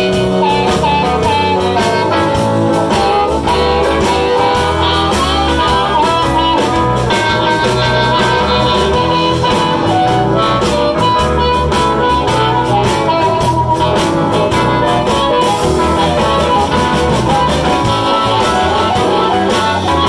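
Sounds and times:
amplified harmonica: 0.0s - 20.0s
electric guitar: 0.0s - 20.0s.

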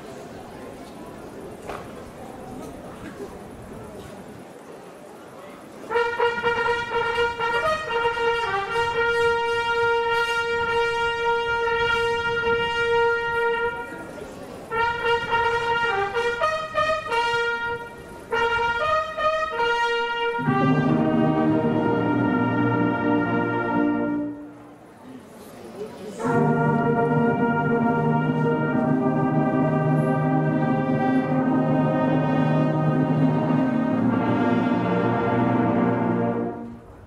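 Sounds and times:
brass band fanfare: 5.9s - 14.1s, 14.7s - 24.5s, 26.2s - 36.8s.

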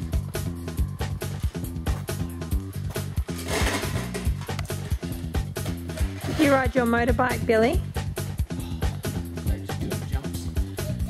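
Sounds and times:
bass line: 0.0s - 11.0s.

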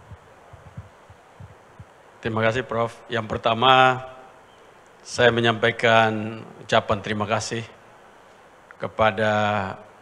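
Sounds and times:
microphone handling thumps: 0.0s - 2.0s.

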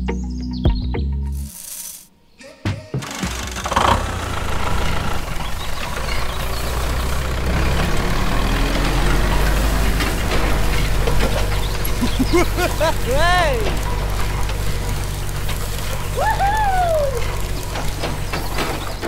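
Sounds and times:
tractor engine running: 3.0s - 19.0s
short laugh: 12.0s - 13.7s.

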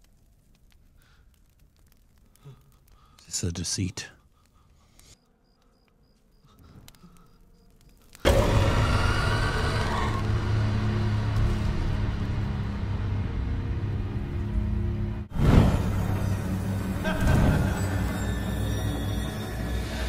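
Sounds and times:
ominous horror film score: 0.6s - 20.0s.

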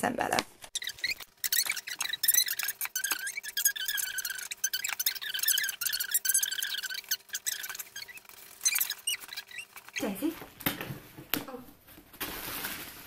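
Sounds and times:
sped up squeaky voice: 0.8s - 10.4s.

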